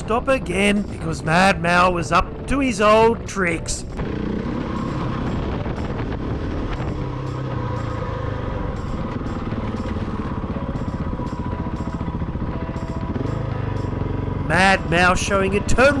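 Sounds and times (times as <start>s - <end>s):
motorcycle engine running: 0.0s - 16.0s
music with light beat: 3.8s - 16.0s.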